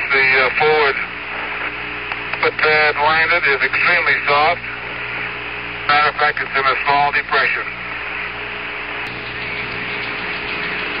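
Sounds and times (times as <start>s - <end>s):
faint hum: 0.0s - 11.0s
radio hiss: 0.0s - 11.0s.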